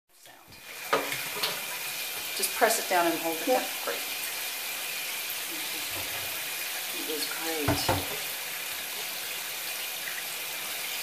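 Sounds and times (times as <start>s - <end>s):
water running into a bathtub: 0.1s - 11.0s.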